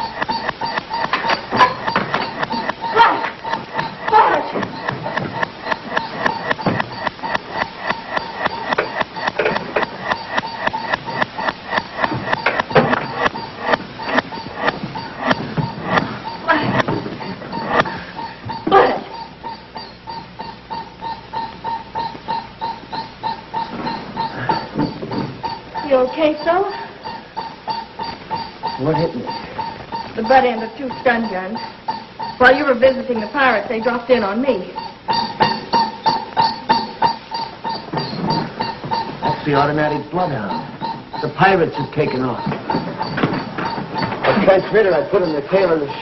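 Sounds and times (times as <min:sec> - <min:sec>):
rapid electronic beeping: 0:00.0 - 0:46.0.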